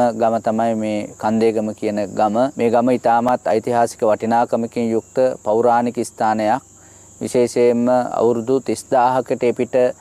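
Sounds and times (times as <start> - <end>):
man narrating: 0.0 - 6.6, 7.2 - 10.0
steady high-pitched whine: 0.0 - 10.0.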